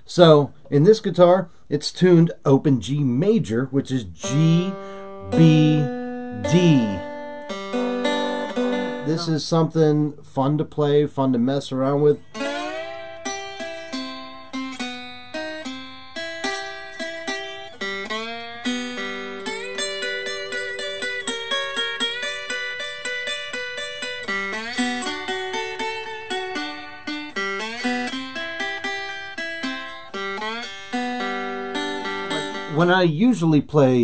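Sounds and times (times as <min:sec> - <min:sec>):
slide guitar blues lick: 0:03.9 - 0:09.9, 0:12.0 - 0:32.9.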